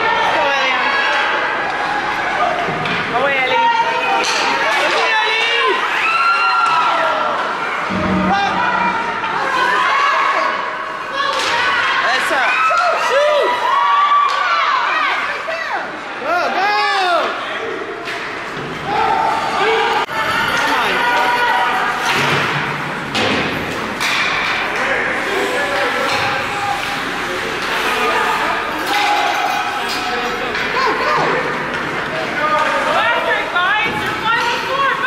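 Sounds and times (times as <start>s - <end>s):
spectators shouting: 3.5s - 18.0s
puck and sticks hitting boards: 22.0s - 24.9s.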